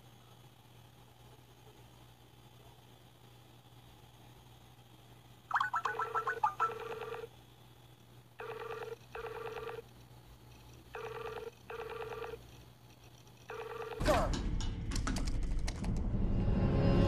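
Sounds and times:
call ringing tone bursts: 5.5 - 7.3, 8.4 - 9.8, 11.0 - 12.4, 13.5 - 14.0.

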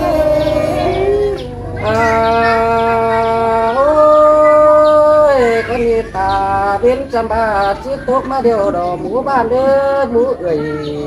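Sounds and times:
man singing long held vowel: 0.0 - 11.0.

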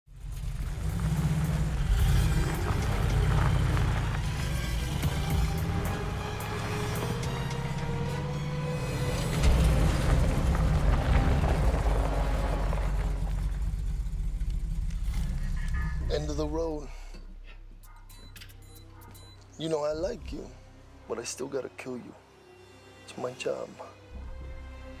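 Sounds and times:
car engine driving off: 0.1 - 16.9
film score music: 0.1 - 25.0.

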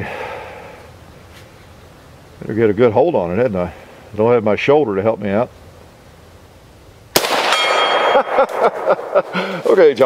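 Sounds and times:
rifle shot: 7.1 - 9.3
steel plate target ringing: 7.2 - 8.8.

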